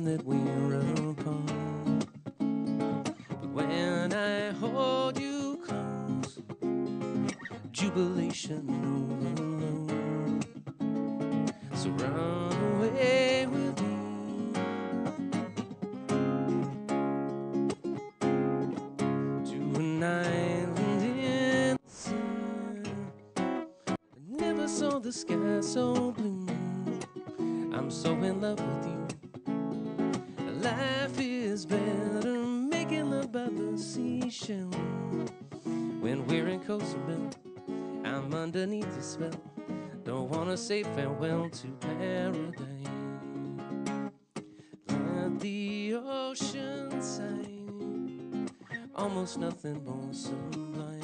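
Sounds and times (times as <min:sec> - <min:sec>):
man singing: 0:00.0 - 0:02.1, 0:03.4 - 0:06.5, 0:07.4 - 0:10.6, 0:11.5 - 0:15.1, 0:19.4 - 0:23.4, 0:24.1 - 0:29.3, 0:30.2 - 0:43.5, 0:44.9 - 0:51.0
strummed acoustic guitar: 0:00.0 - 0:51.0.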